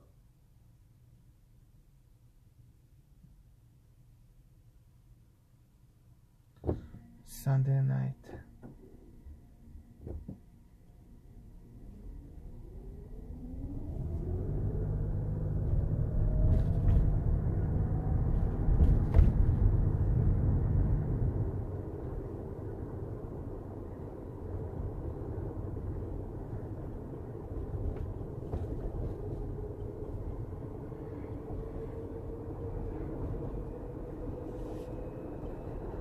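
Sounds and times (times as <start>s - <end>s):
low road rumble: 6.5s - 36.0s
car engine accelerating: 11.3s - 33.6s.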